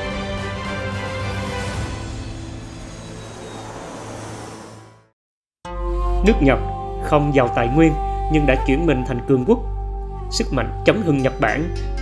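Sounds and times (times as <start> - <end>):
low drone: 0.9 - 5.2.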